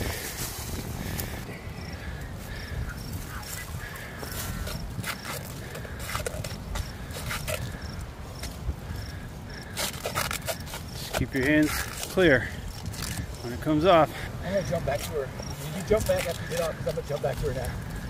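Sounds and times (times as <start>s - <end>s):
scuffling and rustling: 0.0s - 1.4s
footsteps in long grass: 0.0s - 1.5s, 2.3s - 9.8s
wind on microphone: 0.0s - 18.0s.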